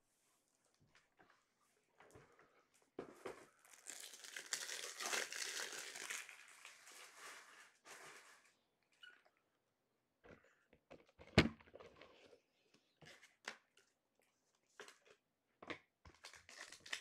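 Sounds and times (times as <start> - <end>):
wrapper crinkling and tearing: 3.6 - 8.5, 16.2 - 17.0.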